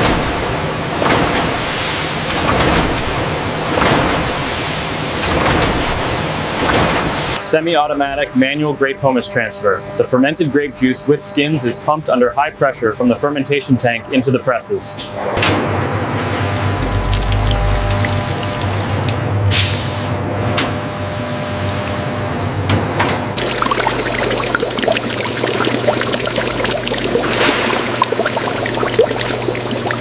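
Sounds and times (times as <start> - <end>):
wine pouring into metal vat: 16.8 - 19.2, 23.4 - 30.0.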